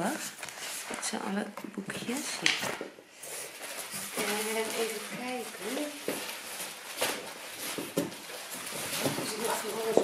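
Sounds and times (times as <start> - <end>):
rummaging in cardboard box: 3.4 - 10.0.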